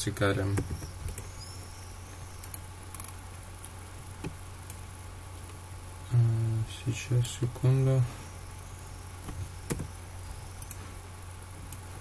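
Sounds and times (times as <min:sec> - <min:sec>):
low electrical hum: 0:00.0 - 0:12.0
computer mouse clicks: 0:02.4 - 0:03.2.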